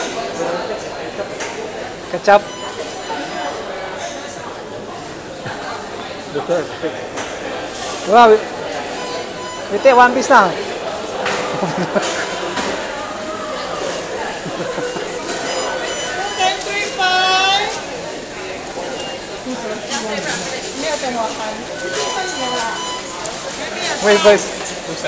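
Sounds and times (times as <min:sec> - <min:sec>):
indistinct chatter of people: 0:00.0 - 0:25.0.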